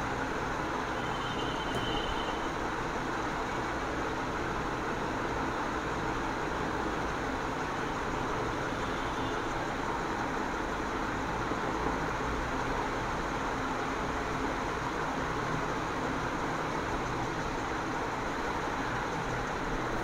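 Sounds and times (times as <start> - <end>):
steady background noise: 0.0 - 20.0.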